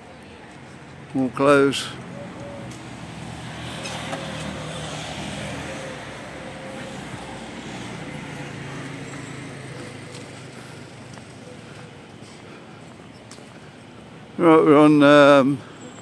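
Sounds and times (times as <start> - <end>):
vehicle engine passing: 1.7 - 12.0.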